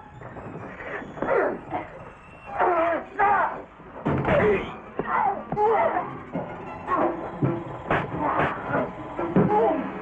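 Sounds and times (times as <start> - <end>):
people yelling in effort or pain: 5.0 - 6.1.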